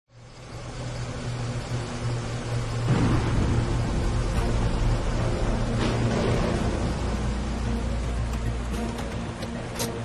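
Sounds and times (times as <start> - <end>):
car engine rumbling: 1.0 - 10.0.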